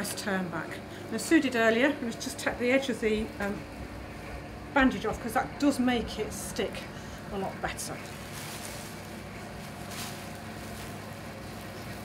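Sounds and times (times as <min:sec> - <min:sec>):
low room hum: 0:00.0 - 0:12.0
soft rustle of padding: 0:08.0 - 0:12.0.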